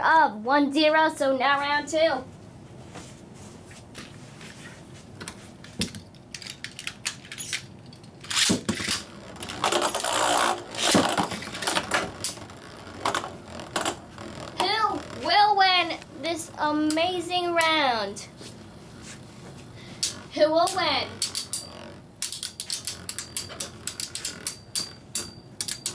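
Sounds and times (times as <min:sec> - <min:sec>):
child's voice: 0:00.0 - 0:02.3, 0:14.6 - 0:18.3, 0:20.3 - 0:21.1
spinning tops clattering: 0:20.0 - 0:25.9.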